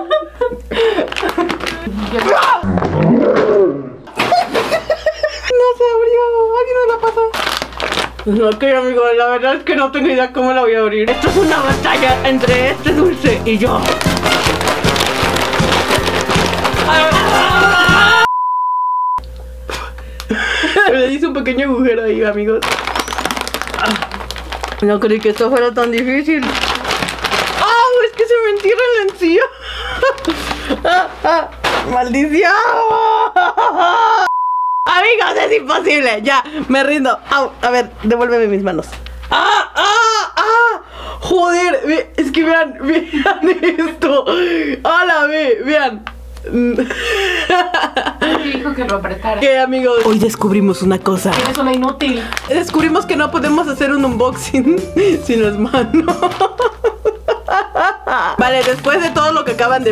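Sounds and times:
woman laughing: 0.0 - 2.2, 4.2 - 5.7, 16.9 - 18.3, 19.7 - 21.2, 29.2 - 31.6, 32.6 - 34.3, 39.3 - 40.8, 42.8 - 44.4, 46.5 - 48.8, 55.0 - 58.6.

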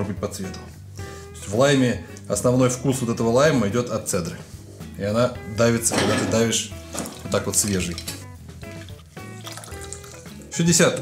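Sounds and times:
background music: 0.0 - 11.0
juice trickling into jug: 6.8 - 11.0.

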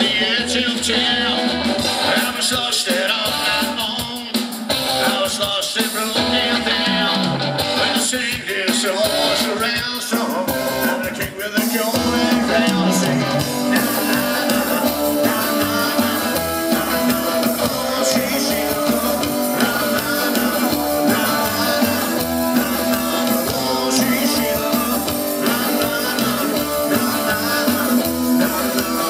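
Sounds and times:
live band playing: 0.0 - 29.0.

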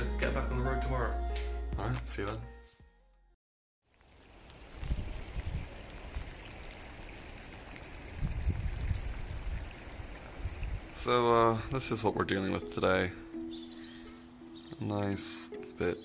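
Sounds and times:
rain hissing: 3.9 - 11.9
wind gusts on microphone: 4.7 - 6.5, 8.0 - 11.1.

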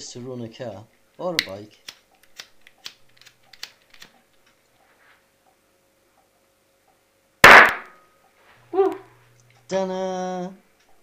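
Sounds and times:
loud sharp bang: 7.4 - 8.0.

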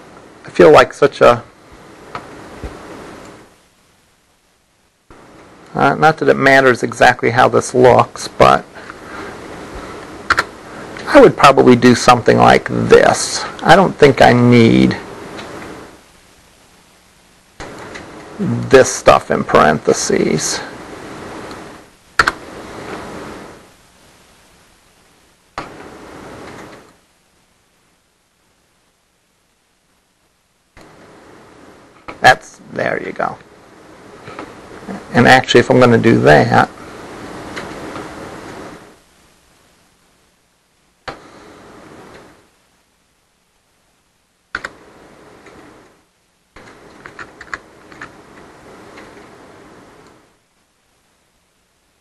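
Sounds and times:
room hiss: 0.0 - 52.0
computer keyboard tapping: 44.5 - 44.8, 46.6 - 48.1.

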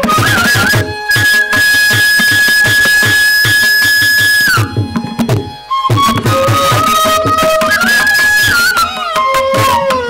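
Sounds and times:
bamboo flute note: 0.0 - 10.0
drum strokes: 0.0 - 10.0.

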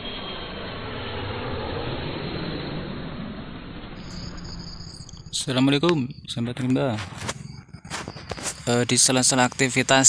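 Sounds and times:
dull steady rushing noise: 0.0 - 10.0.

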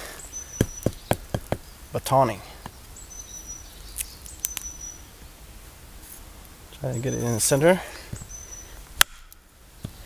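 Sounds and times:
faint forest ambience: 0.0 - 10.0.

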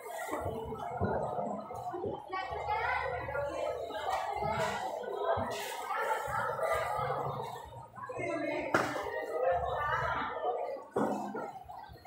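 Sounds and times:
indistinct background voices: 0.0 - 12.0.

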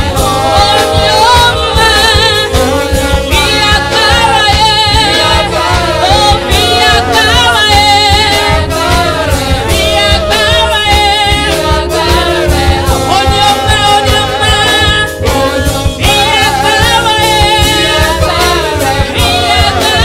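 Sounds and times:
live band accompaniment: 0.0 - 20.0
woman singing gospel with vibrato: 0.0 - 20.0.

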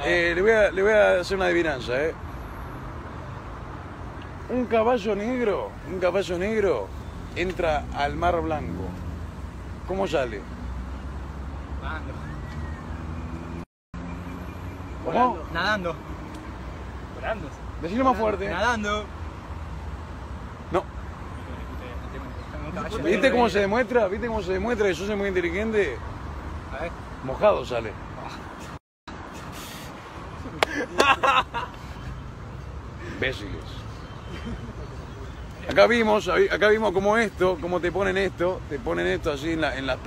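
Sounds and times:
passing cars: 0.0 - 40.0
road traffic rumble: 0.0 - 40.0.

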